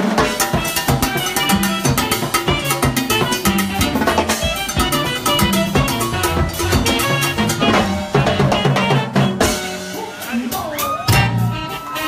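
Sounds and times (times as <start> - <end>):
drum kit beat: 0.0 - 12.0
bass line: 0.5 - 9.9, 11.1 - 12.0
sustained instrument notes: 2.6 - 9.6.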